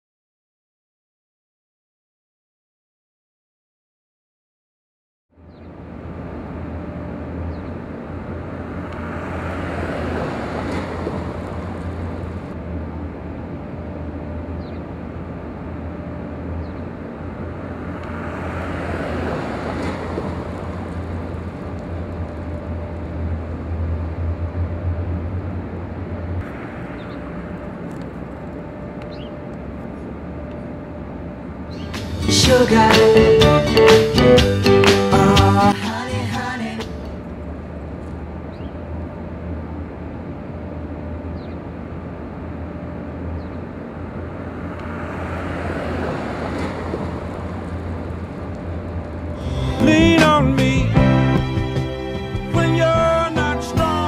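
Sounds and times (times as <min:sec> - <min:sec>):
steady low hum: 0:05.4 - 0:32.9, 0:35.2 - 0:45.6
vehicle passing: 0:05.8 - 0:50.3.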